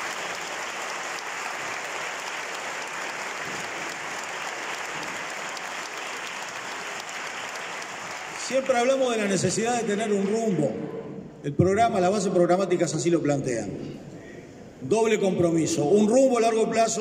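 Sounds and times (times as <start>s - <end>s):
audience applauding: 0.0s - 10.1s.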